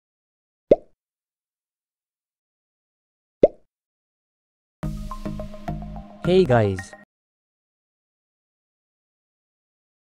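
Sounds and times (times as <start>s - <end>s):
pop sound effects: 0.7s - 1.0s, 3.4s - 3.7s.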